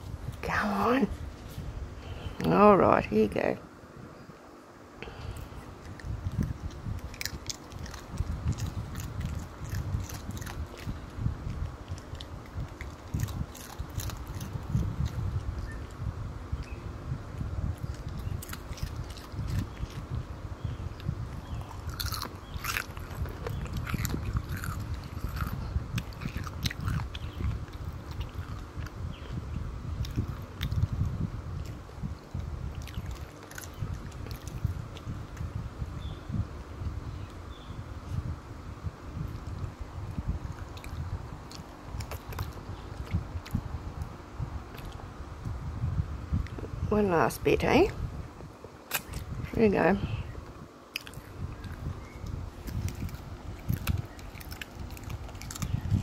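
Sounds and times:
low rumble: 5.1s - 56.0s
dog chewing food: 5.6s - 16.0s, 17.7s - 29.0s, 30.0s - 35.5s, 50.9s - 56.0s.

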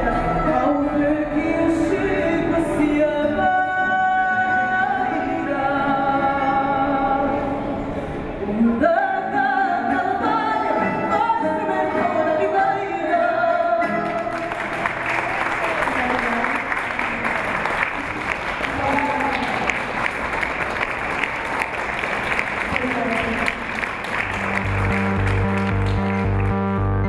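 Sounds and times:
audience applauding: 14.0s - 26.8s
voices among clapping: 14.2s - 26.5s
electronic music with pulsing beat: 24.6s - 27.0s.

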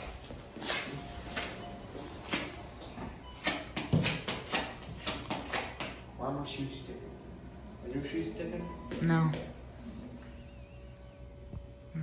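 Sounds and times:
footsteps on tiled floor: 0.0s - 6.1s, 8.8s - 9.9s.

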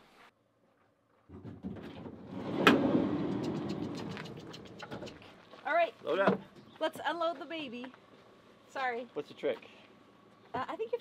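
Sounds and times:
sliding door rolling: 1.8s - 3.6s.

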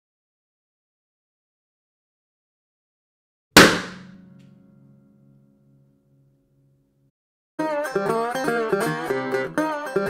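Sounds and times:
balloon bursting: 3.6s - 4.2s
guitar strings ringing: 4.0s - 5.9s.

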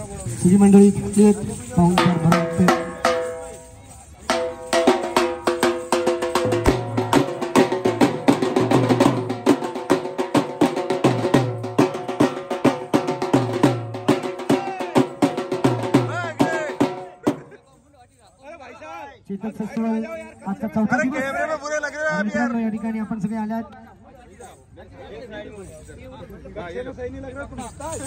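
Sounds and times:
drum beaten fast with sticks: 1.8s - 3.6s, 4.2s - 17.5s.

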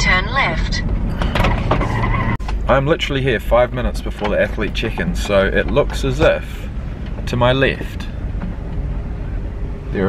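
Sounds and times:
road noise: 0.0s - 10.0s
van engine rumble: 0.0s - 10.0s.

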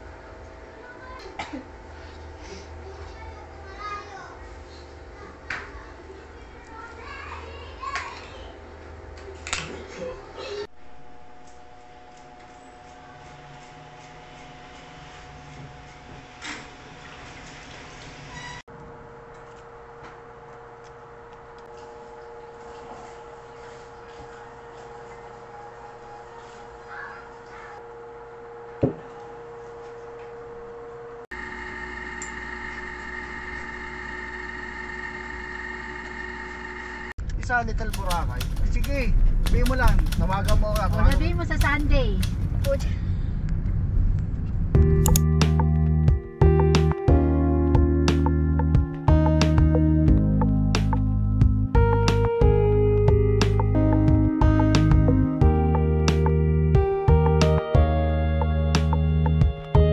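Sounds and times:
children's voices: 0.8s - 1.6s, 2.8s - 8.6s, 26.7s - 27.8s
machine hum with high tones: 8.5s - 26.8s, 27.8s - 37.2s.

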